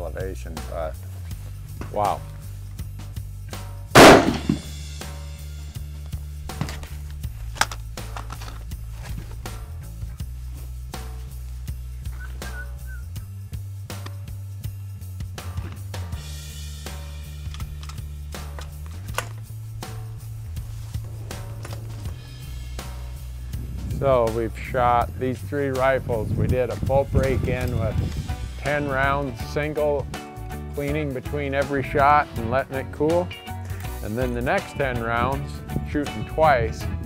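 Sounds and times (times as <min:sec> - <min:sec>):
background music with bass line: 0:00.0 - 0:37.0
rifle shot with echo: 0:04.0 - 0:04.7.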